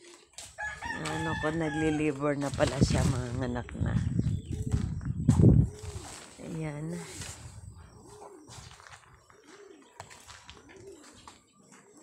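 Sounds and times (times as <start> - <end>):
dove cooing: 0.0 - 12.0.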